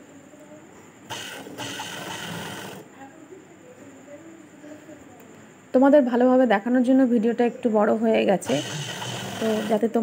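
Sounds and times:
sewing machine stitching: 1.1 - 2.9, 8.4 - 9.9.

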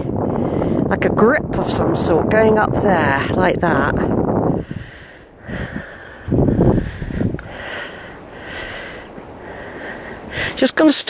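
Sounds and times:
person breathing close to microphone: 0.0 - 0.9, 4.4 - 10.6.

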